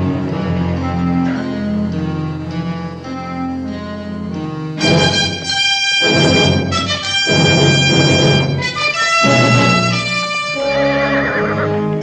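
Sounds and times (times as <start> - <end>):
orchestral brass chords: 0.0 - 3.7, 4.7 - 12.0.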